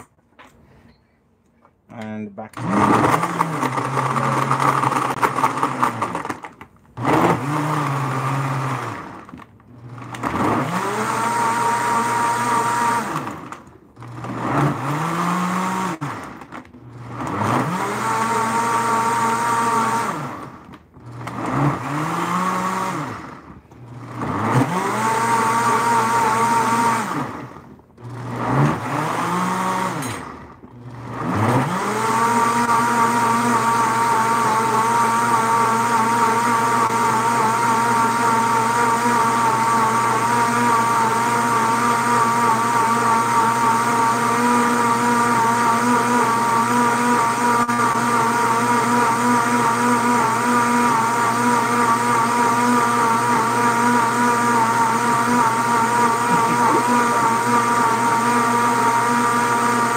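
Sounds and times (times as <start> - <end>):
blender motor speeding up: 2.5 - 59.9.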